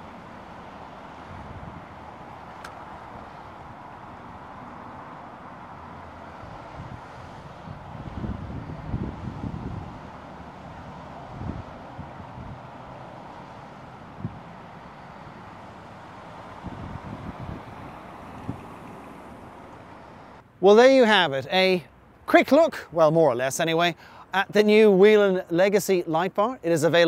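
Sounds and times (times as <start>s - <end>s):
outdoor background rumble: 0.0s - 20.6s
wind buffeting microphone: 1.0s - 20.1s.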